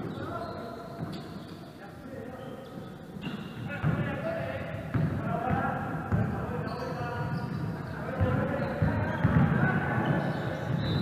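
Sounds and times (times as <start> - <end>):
basketball dribbled on wooden floor: 8.1 - 11.0.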